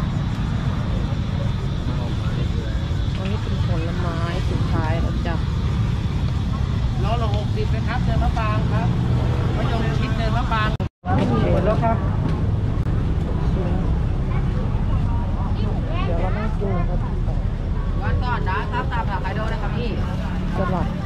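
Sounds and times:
steady low rumble: 0:00.0 - 0:21.0
people talking: 0:00.7 - 0:05.6, 0:06.9 - 0:12.4, 0:13.2 - 0:21.0.

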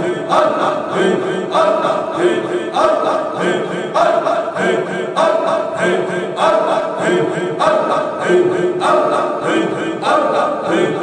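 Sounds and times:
group of voices chanting: 0:00.0 - 0:11.0.

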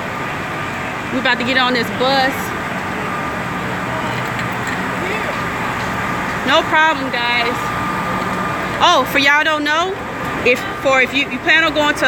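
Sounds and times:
bus engine idling: 0:00.0 - 0:12.0
faint voices: 0:00.0 - 0:12.0.

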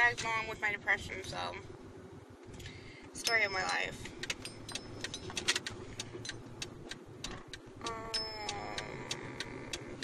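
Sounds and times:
car cabin low hum: 0:00.0 - 0:10.0
turn signal ticking: 0:02.6 - 0:10.0.

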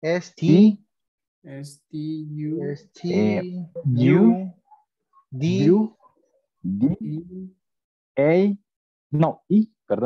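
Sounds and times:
person making drawn-out vocal sounds: 0:03.0 - 0:04.5, 0:06.7 - 0:07.6.

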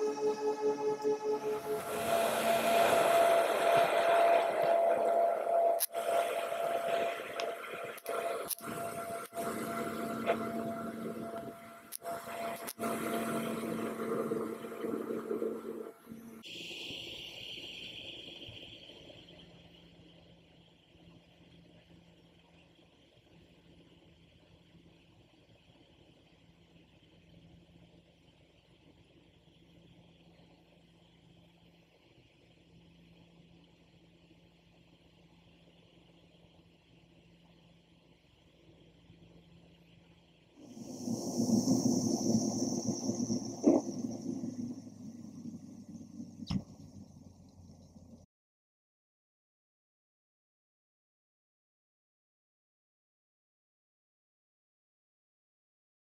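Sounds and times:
faint steady hiss and hum: 0:00.0 - 0:48.2.

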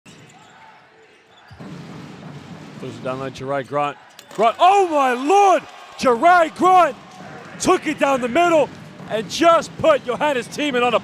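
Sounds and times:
murmur of arena crowd: 0:00.1 - 0:11.0.

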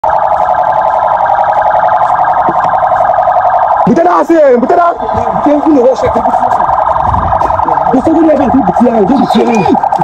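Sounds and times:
pulsing electronic alarm tone: 0:00.0 - 0:10.0
man speaking: 0:03.9 - 0:06.8, 0:07.4 - 0:10.0.

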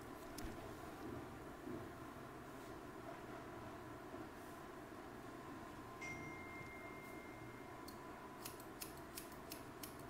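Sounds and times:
scissors snipping wet hair: 0:08.4 - 0:10.0.

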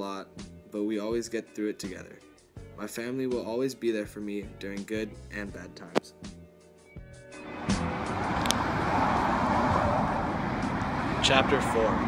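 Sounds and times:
music: 0:00.0 - 0:09.2
rushing outdoor background noise: 0:07.4 - 0:12.0.

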